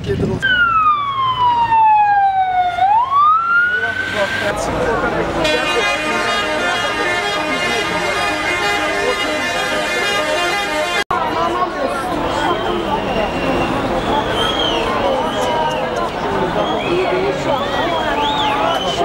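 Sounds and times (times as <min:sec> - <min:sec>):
emergency vehicle siren wailing: 0:00.4 - 0:04.7
steady buzzy horn tone: 0:05.4 - 0:11.1.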